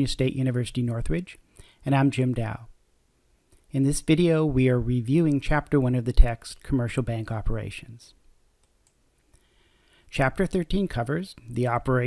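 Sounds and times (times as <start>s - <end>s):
faint clicks: 8.6s - 9.5s.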